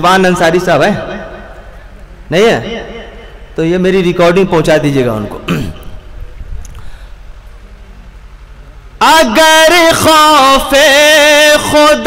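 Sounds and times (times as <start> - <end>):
low background hum and rumble: 0.0 - 12.0
person speaking: 3.6 - 6.3.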